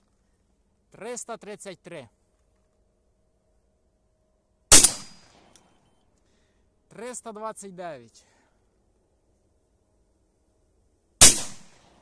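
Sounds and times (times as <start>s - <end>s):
shotgun shot: 4.7s - 5.5s, 11.2s - 12.0s.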